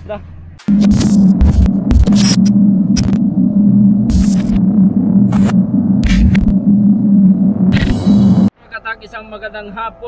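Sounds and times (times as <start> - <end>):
deep bass hits: 0.7 - 8.5
loud low drone: 0.7 - 8.5.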